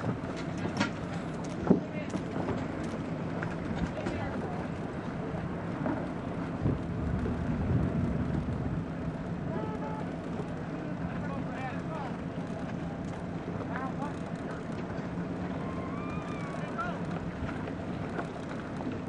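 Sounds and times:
motor droning: 2.2 - 19.0.

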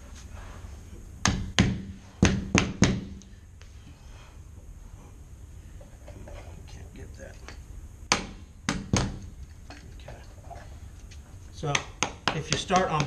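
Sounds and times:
mallet knocking rubber molding: 1.2 - 3.2, 11.7 - 13.0.

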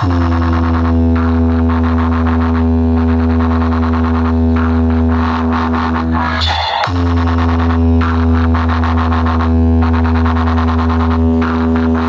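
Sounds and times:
electronic bass drone: 0.0 - 12.0.

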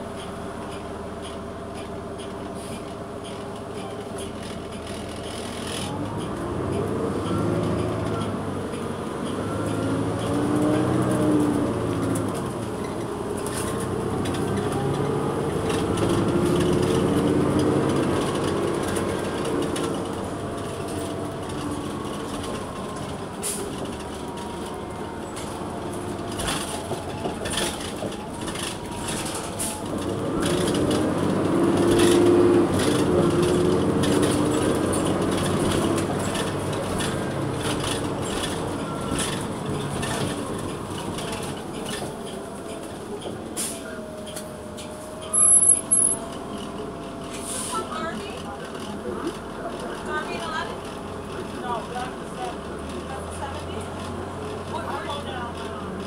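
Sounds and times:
bus engine revving: 4.2 - 56.0.

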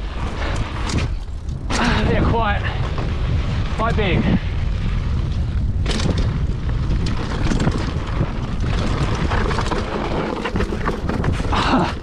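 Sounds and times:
bike rattling and knocking: 0.0 - 12.0
bike tyres rumbling on dirt: 0.0 - 12.0
wind buffeting microphone: 0.0 - 12.0.

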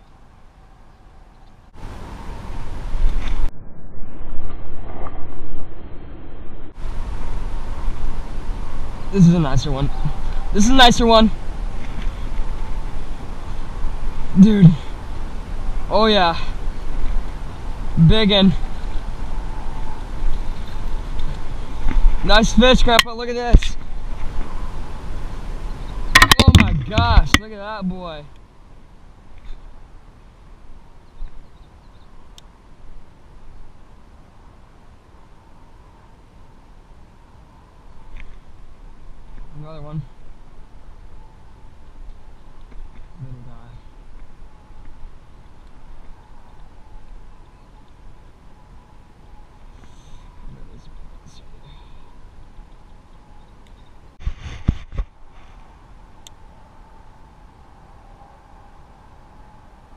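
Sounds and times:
faint outdoor background: 0.0 - 59.9
wind buffeting microphone: 1.8 - 27.5
birds chirping: 8.8 - 28.2, 30.9 - 32.4, 48.7 - 54.2.

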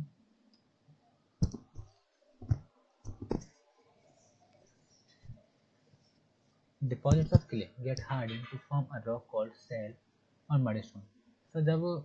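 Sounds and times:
faint taps: 1.4 - 3.5.

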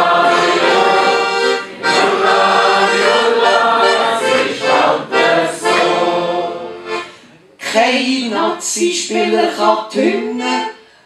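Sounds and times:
accordion playing held chords: 0.0 - 7.4, 10.0 - 10.8.

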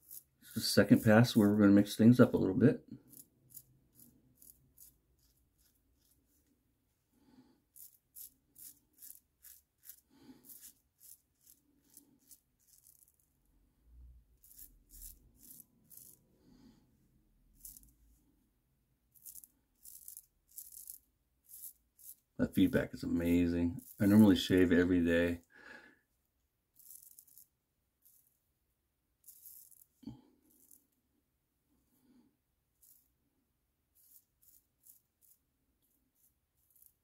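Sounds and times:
razor scraping stubble: 0.0 - 1.7, 3.0 - 6.5, 7.7 - 13.3, 14.4 - 16.2, 17.6 - 17.9, 19.1 - 25.3, 26.8 - 28.3, 29.2 - 30.8, 33.9 - 37.0.

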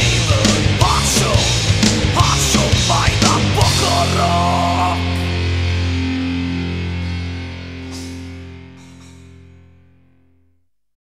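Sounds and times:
distorted electric guitar chord: 0.0 - 10.5
cymbal hits: 7.8 - 9.9.

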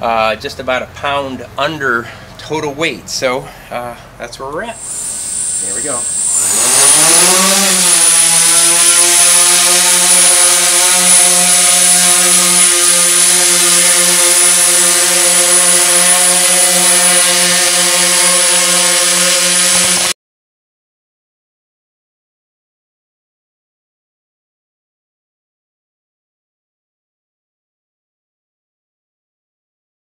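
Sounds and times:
drone motors whining and humming: 4.8 - 20.2.

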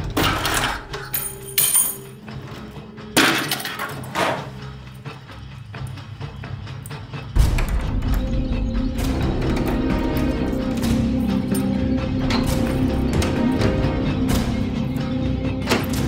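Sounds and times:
dramatic background score: 0.0 - 16.0.

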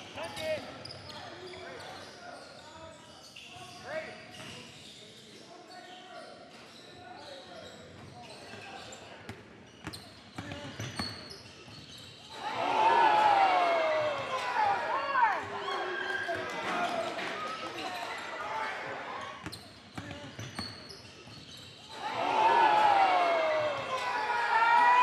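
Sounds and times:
crowd ooh: 12.4 - 16.3, 22.0 - 25.0
players shouting: 12.4 - 18.9, 21.9 - 25.0.

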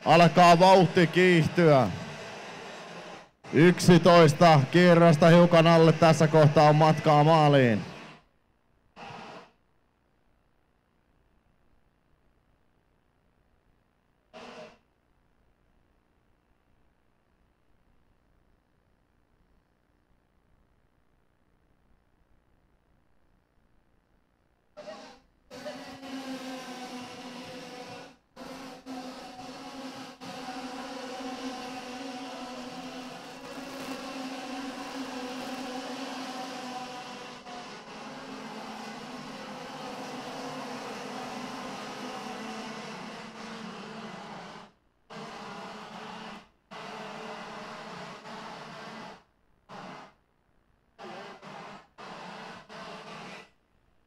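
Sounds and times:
kart engines racing: 0.0 - 2.1, 25.5 - 43.8.

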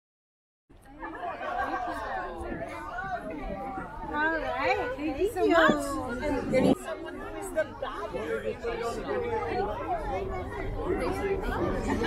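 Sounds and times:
people chattering: 0.7 - 12.0.

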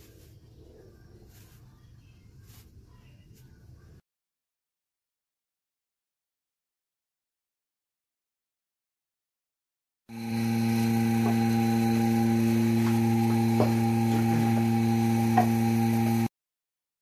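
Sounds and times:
small electric machine humming: 10.1 - 16.3.

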